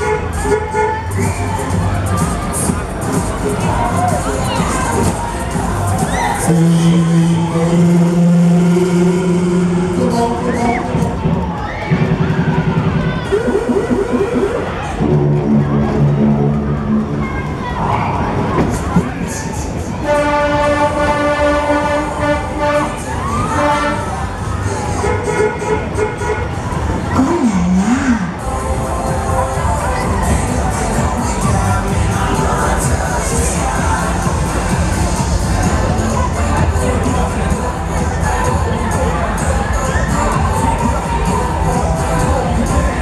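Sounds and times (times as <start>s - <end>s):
loud music with steady beat: 0.0s - 17.3s, 26.8s - 43.0s
fairground ride running: 0.0s - 43.0s
rising and falling wails: 13.3s - 14.9s
children shouting and screaming: 22.9s - 24.7s.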